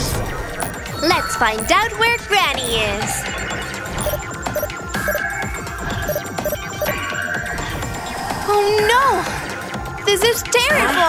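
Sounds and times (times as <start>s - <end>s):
electronic music with throbbing pulse: 0.0s - 11.0s
short beeps: 4.0s - 5.3s.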